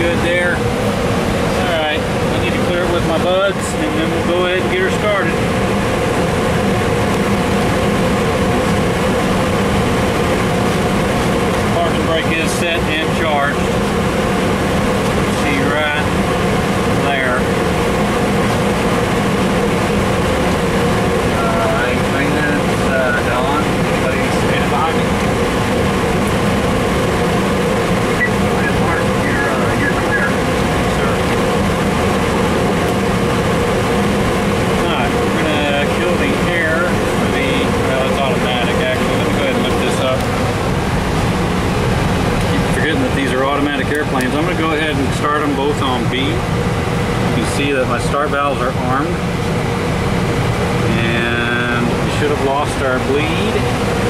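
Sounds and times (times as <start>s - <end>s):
air-conditioning airflow: 0.0s - 54.0s
cockpit hum: 0.0s - 54.0s
faint voices: 28.1s - 31.4s.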